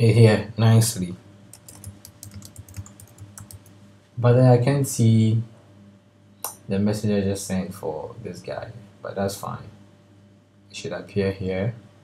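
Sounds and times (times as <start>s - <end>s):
computer keyboard key clicks: 1.6s - 3.7s.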